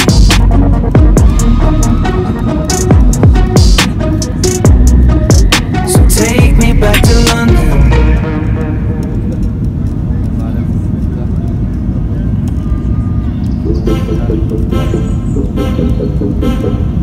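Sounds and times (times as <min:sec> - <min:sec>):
rhythmic music: 0:00.0 - 0:09.8, 0:13.6 - 0:17.0
jet engine rumble in cabin: 0:08.6 - 0:15.6.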